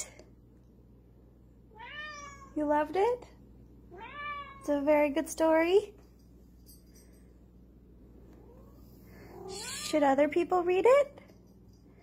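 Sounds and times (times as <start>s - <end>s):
cat meowing: 1.7s - 2.6s, 3.9s - 4.6s.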